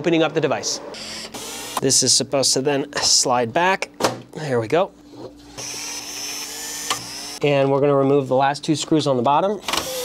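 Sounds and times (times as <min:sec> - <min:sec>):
electric screwdriver whining: 0:01.0 - 0:01.8, 0:05.6 - 0:07.4, 0:09.7 - 0:10.0.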